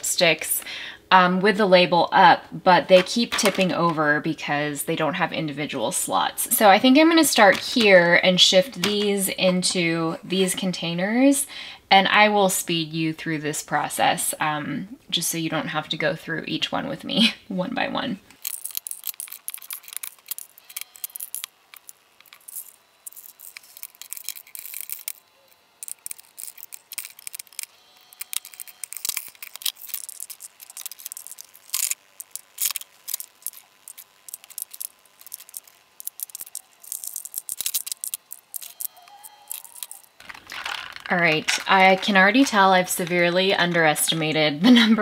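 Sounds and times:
lipstick tubes clicking on plastic: 25.8s - 43.2s.

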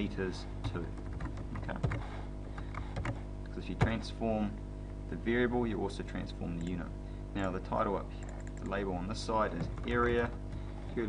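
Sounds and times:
steady low hum: 0.0s - 11.0s
keyboard keys clicking: 0.6s - 2.0s, 8.2s - 8.8s.

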